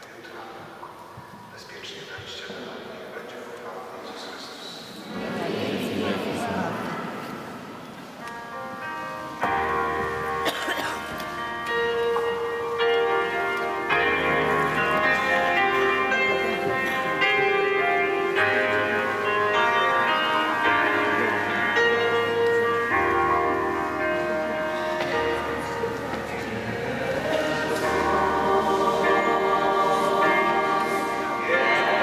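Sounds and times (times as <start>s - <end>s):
keyboard playing sustained chords: 5.0s - 32.0s.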